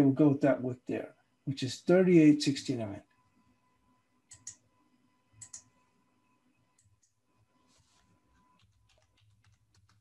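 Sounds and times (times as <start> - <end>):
faint keyboard typing: 4.2 - 10.0.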